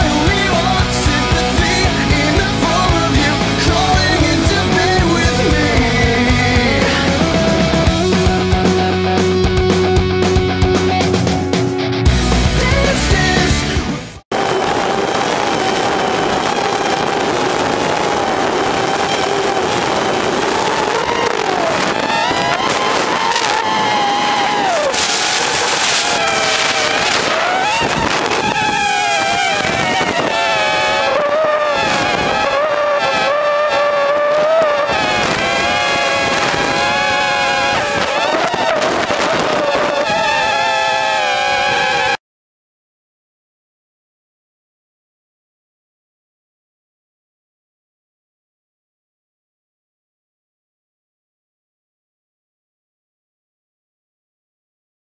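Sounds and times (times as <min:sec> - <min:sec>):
drone motors whining: 0:14.3 - 0:42.2.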